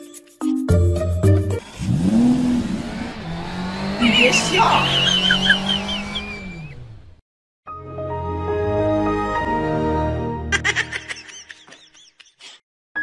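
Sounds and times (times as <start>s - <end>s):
car engine revving: 1.6s - 7.2s
tyre squeal: 3.9s - 6.8s.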